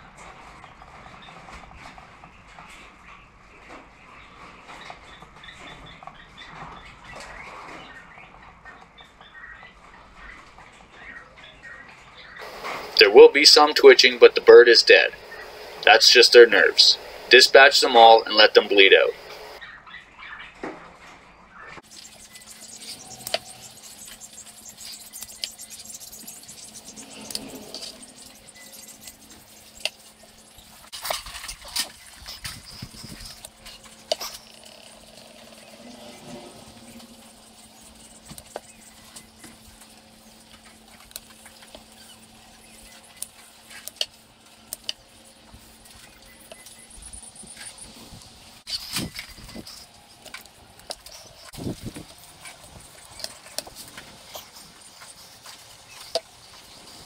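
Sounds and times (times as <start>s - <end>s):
faint steady hum: 12.4s - 19.6s.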